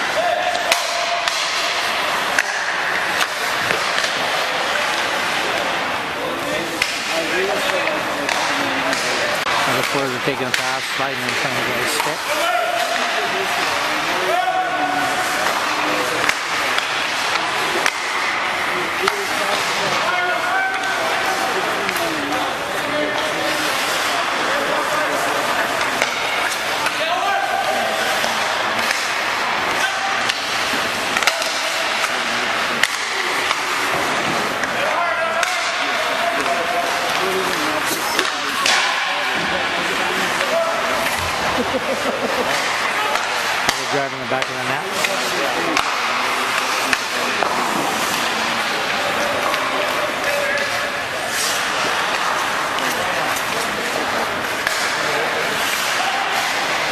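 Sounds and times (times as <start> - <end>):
skates scraping on ice: 0.0 - 56.9
sticks and pucks knocking: 0.5 - 5.8, 6.7 - 14.1, 15.1 - 20.0, 28.2 - 34.8, 35.4 - 50.7.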